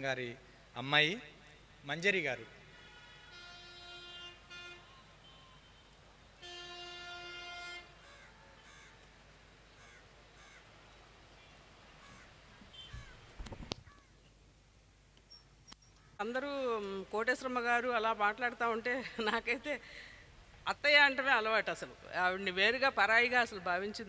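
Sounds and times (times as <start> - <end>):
long horn blasts: 2.7 - 5.6, 6.4 - 8.0
short bird calls: 9.7 - 10.6, 12.0 - 14.3.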